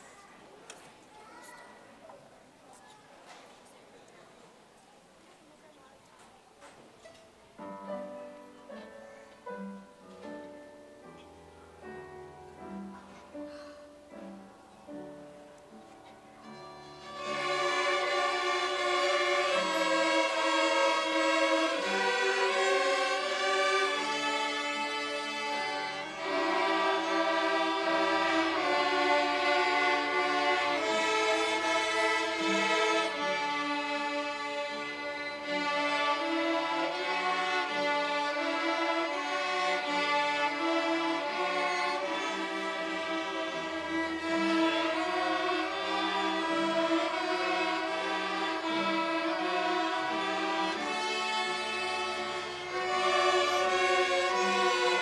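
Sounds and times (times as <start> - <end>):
string ensemble playing: 7.6 - 55.0.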